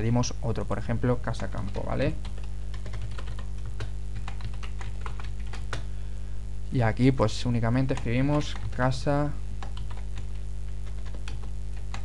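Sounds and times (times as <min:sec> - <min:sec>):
keyboard typing: 0:01.3 - 0:05.9, 0:07.7 - 0:08.9, 0:09.6 - 0:12.0.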